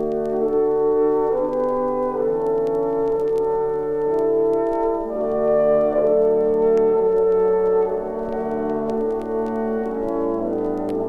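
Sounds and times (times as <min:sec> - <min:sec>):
vinyl record clicks: 0:00.0 - 0:11.0.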